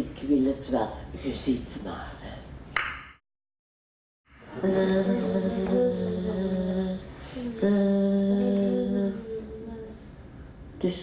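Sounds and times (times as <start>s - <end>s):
choir humming held notes: 4.3s - 10.0s.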